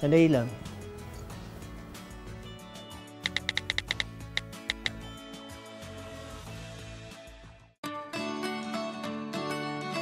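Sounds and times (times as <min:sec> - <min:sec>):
background music: 0:00.0 - 0:10.0
phone keyboard taps: 0:03.3 - 0:05.0.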